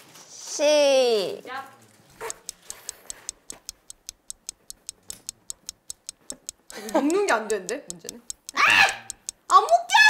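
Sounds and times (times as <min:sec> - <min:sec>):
clock ticking: 0:02.2 - 0:10.0.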